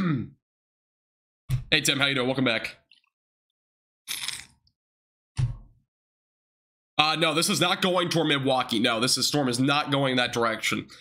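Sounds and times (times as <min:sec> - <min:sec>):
person slurping a drink: 0:04.1 - 0:04.6.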